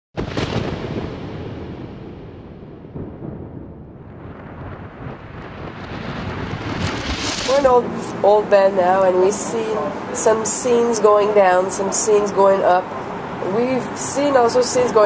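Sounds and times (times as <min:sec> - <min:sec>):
thunder crack and rumble: 0:00.2 - 0:09.0.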